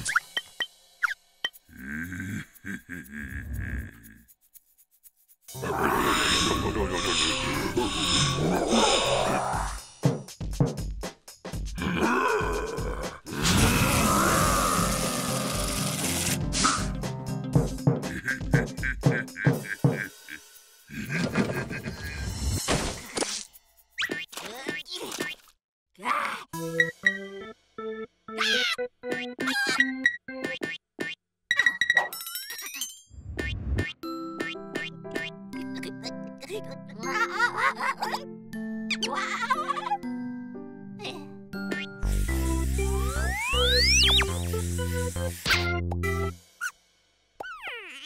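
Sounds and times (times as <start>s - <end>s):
cartoon background music: 5.5s - 20.4s, 26.5s - 46.8s
character straining grunts: 11.8s - 15.0s.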